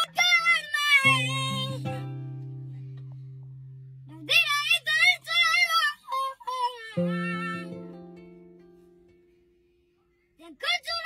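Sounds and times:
high voice singing with vibrato: 0:00.0 - 0:02.1, 0:04.4 - 0:08.0
plucked string notes: 0:00.0 - 0:04.4, 0:07.0 - 0:09.4.

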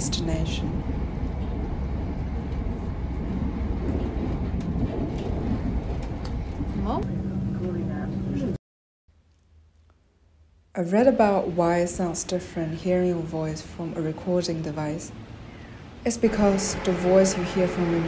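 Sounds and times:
train rumbling: 0:00.0 - 0:08.6, 0:11.0 - 0:18.0.

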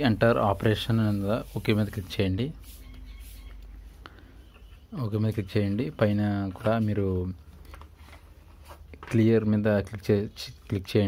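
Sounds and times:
man speaking: 0:00.0 - 0:02.6, 0:04.9 - 0:07.4, 0:09.0 - 0:11.0.

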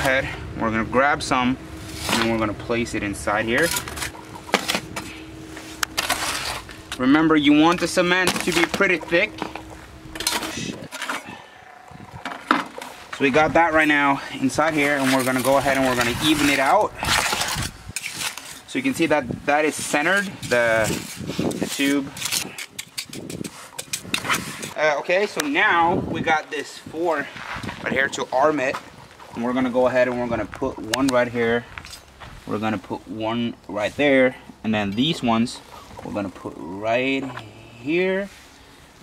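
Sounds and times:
trowel scraping cement in bucket: 0:06.0 - 0:06.8, 0:14.7 - 0:19.0, 0:19.8 - 0:24.8.

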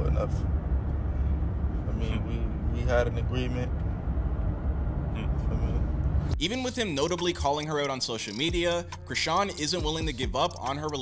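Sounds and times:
car interior rumble: 0:00.0 - 0:07.2.

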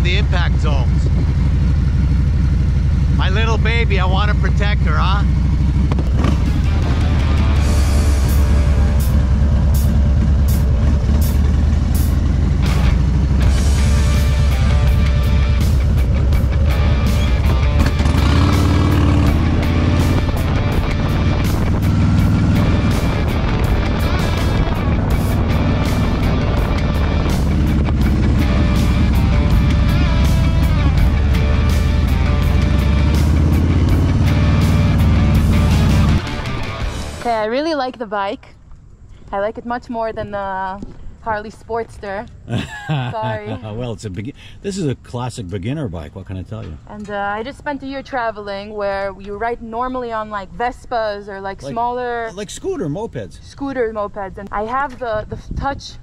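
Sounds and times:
motorcycle engine running: 0:00.0 - 0:37.8
background music: 0:06.2 - 0:38.1, 0:42.5 - 0:43.9, 0:51.5 - 0:52.8.

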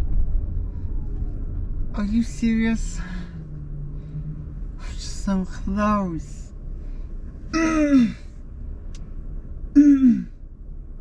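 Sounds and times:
low car cabin hum: 0:00.0 - 0:11.0
person sighing: 0:09.8 - 0:10.3.

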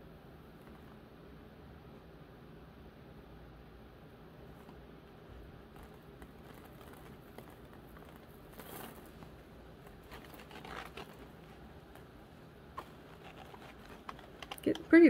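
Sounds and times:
soft handling rustles: 0:04.4 - 0:15.0.

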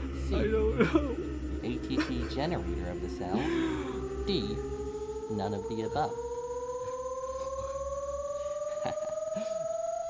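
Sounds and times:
synthetic tone rising in pitch: 0:00.0 - 0:10.0.

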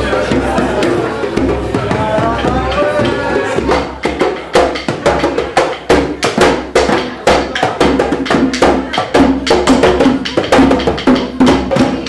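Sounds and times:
hand drums slaps and tones: 0:00.0 - 0:12.0.

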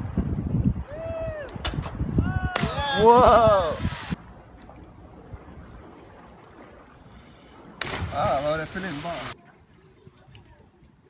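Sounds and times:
wind on microphone: 0:00.0 - 0:04.2
person exclaiming: 0:02.2 - 0:03.8
water splashing: 0:02.6 - 0:10.9
body slapping into water: 0:07.8 - 0:09.1.

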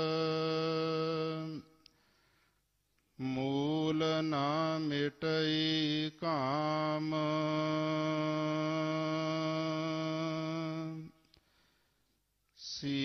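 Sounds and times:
man chanting: 0:00.0 - 0:01.8, 0:03.2 - 0:11.2, 0:12.6 - 0:13.0.

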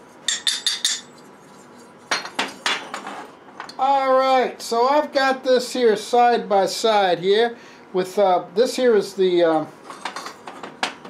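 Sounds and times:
metal cylinders clinking on workbench: 0:00.3 - 0:01.2.

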